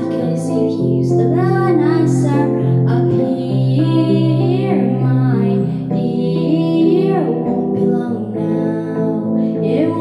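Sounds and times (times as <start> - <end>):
digital piano chords: 0.0 - 10.0
woman singing into a microphone: 0.0 - 10.0.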